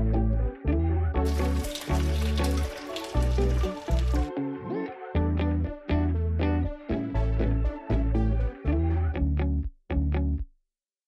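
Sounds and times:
background music with bass line: 0:00.0 - 0:10.5
food sizzling in frying pan: 0:01.3 - 0:04.3.

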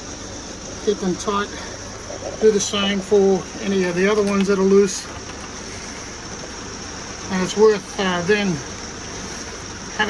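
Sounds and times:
rain on caravan roof: 0:02.5 - 0:10.0.

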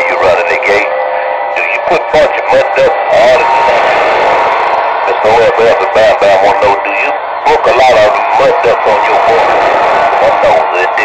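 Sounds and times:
garbled radio voice: 0:00.0 - 0:04.0, 0:05.0 - 0:11.0
radio static hiss: 0:00.0 - 0:11.0.

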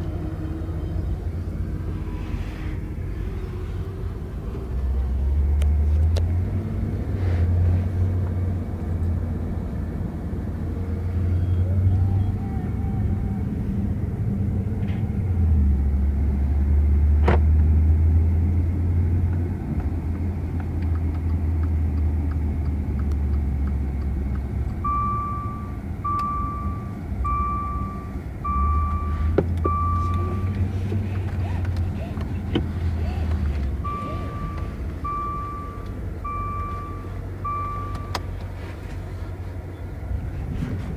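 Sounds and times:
car engine and road rumble: 0:00.0 - 0:40.9
car warning chime beeping: 0:24.8 - 0:30.6, 0:33.7 - 0:38.3.

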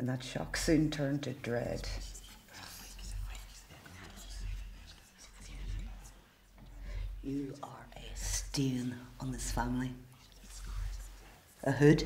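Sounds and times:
faint whispering: 0:01.1 - 0:12.0.

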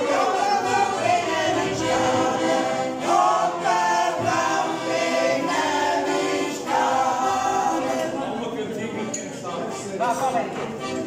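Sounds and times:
women's choir singing: 0:00.0 - 0:08.4.

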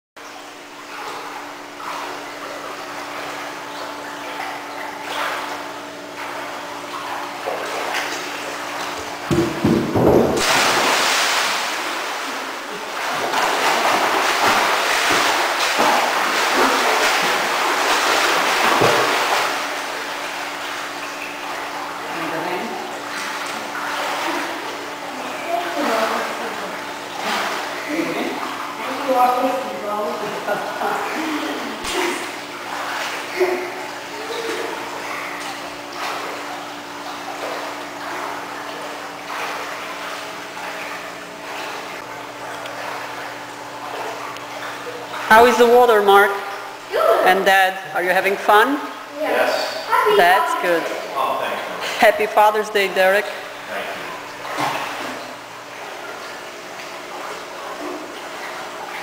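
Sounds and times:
steady hum: 0:00.2 - 0:59.0
swimming splashes: 0:00.2 - 0:59.0
loud splash into pool: 0:09.2 - 0:20.2.

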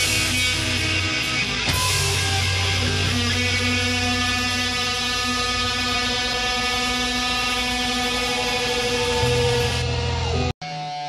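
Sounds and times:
electric guitar feedback drone: 0:00.0 - 0:11.0.

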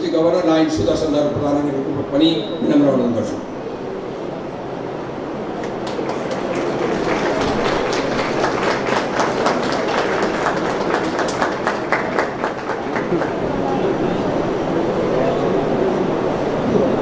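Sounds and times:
audience applauding: 0:05.6 - 0:14.0.

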